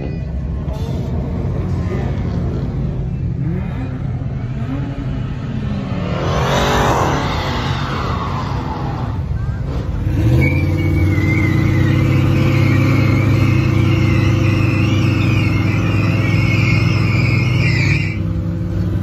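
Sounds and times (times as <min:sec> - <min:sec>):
car engine at high revs: 0:00.7 - 0:19.0
tyres squealing: 0:10.2 - 0:18.3.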